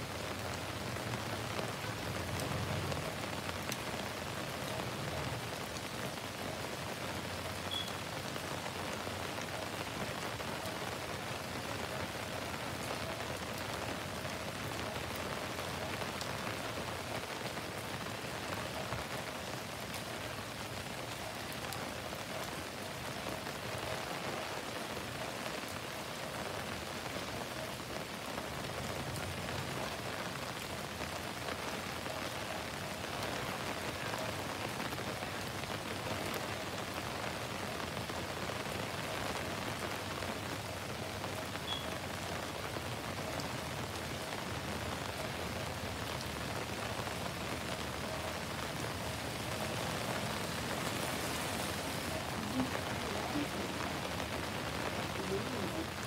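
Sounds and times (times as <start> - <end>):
heavy rain on pavement: 0.0 - 56.0.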